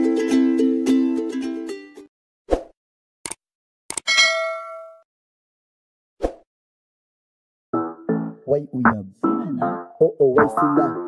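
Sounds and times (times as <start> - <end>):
plucked-string music: 0.0 - 2.1
notification bell ding: 4.1 - 5.0.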